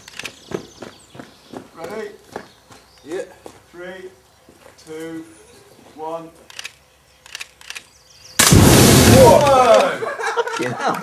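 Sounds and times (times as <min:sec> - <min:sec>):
escaping gas burning: 0:08.4 - 0:09.8.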